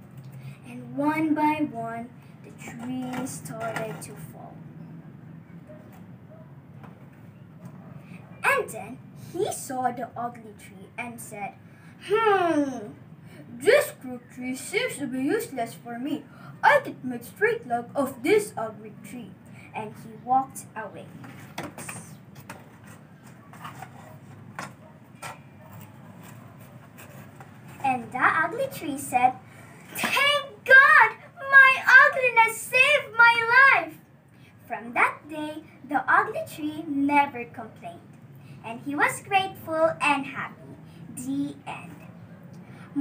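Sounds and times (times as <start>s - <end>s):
low background hum: 0.0s - 43.0s
paper rustling: 21.2s - 27.8s.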